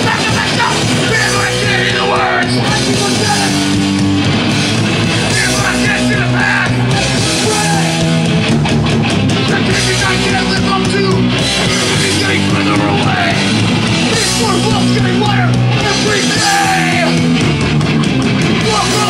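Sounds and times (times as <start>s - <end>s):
bass: 0.0s - 19.0s
distorted electric guitars: 0.0s - 19.0s
drums: 0.0s - 19.0s.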